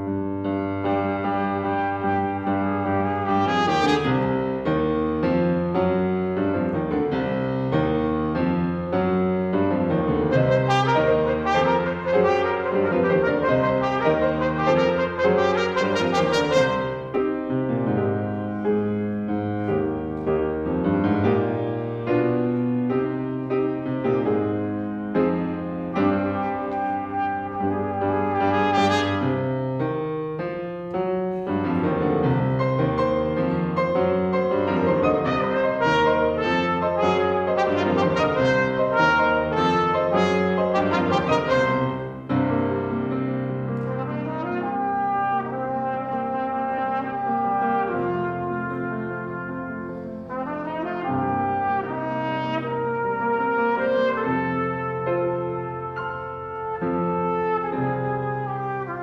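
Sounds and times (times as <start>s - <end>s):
piano accompaniment: 0.0s - 59.0s
trumpet melody: 0.0s - 59.0s.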